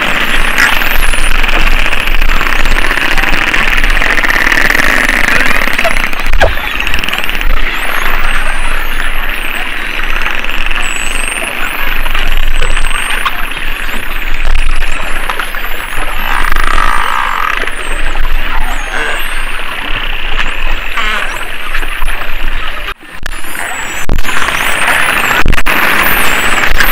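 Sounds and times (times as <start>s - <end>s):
dolphin whistles: 0.0s - 13.5s, 14.2s - 22.0s
buzzy dolphin call: 20.8s - 21.6s.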